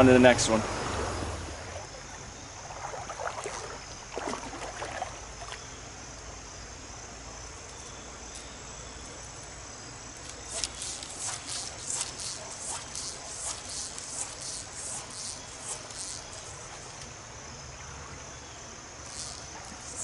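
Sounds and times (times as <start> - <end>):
high-pitched insect drone: 10.2 - 20.0
short rasping insect chirps: 10.2 - 20.0.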